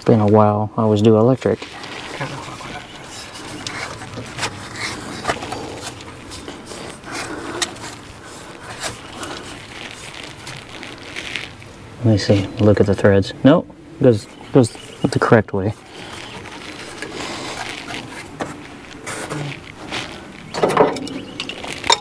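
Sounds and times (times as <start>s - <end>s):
fan clicking and scraping: 0.0s - 13.3s, 14.0s - 22.0s.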